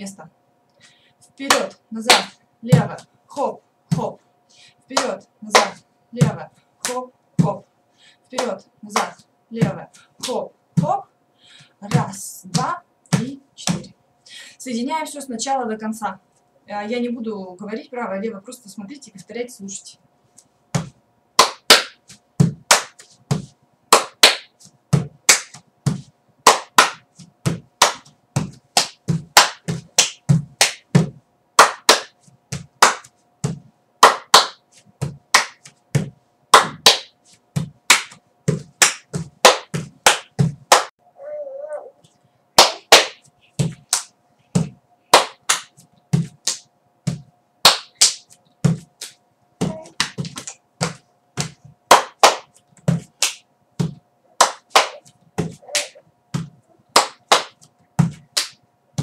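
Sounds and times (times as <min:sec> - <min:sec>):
rhythmic hand claps: 0:01.5 - 0:02.4, 0:04.9 - 0:07.0, 0:20.8 - 0:40.9, 0:42.6 - 0:58.6
foot stamps: 0:11.8 - 0:13.9, 0:20.7 - 0:40.9, 0:42.6 - 0:54.0, 0:56.3 - 0:59.0
hand slapping foot: 0:20.8 - 0:40.9, 0:42.6 - 0:59.0.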